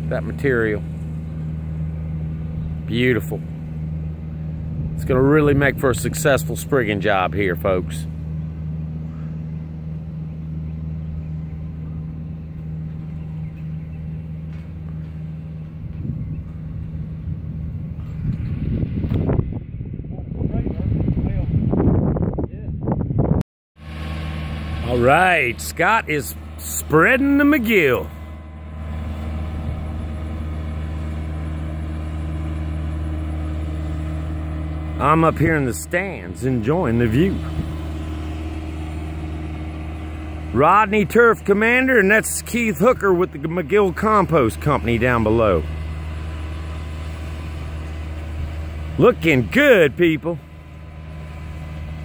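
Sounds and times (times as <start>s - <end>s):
engine humming: 0.0s - 22.2s, 22.9s - 52.0s.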